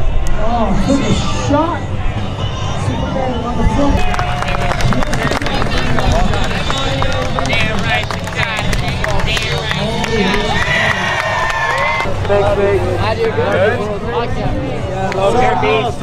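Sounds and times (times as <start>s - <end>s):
voices: 0.4s - 16.0s
crowd applauding and cheering: 4.0s - 12.6s.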